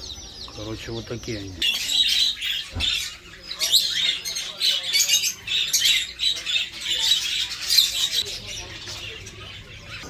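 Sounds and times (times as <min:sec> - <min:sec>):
small birds chirping and chattering: 0:00.0 - 0:10.0.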